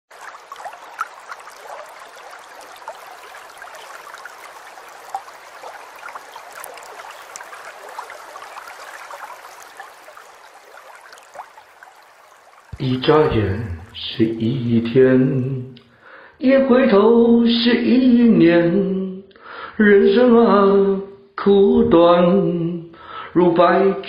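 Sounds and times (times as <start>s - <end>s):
water trickling and gurgling: 0.1s - 15.9s.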